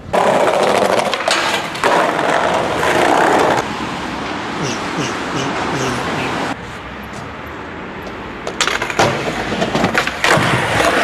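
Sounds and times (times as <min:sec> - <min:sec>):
skateboard wheels rolling on stone: 0:00.0 - 0:03.8, 0:08.1 - 0:11.0.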